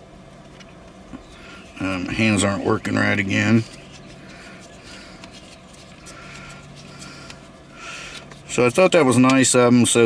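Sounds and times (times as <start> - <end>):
plastic pieces rubbing: 3.4 - 9.0.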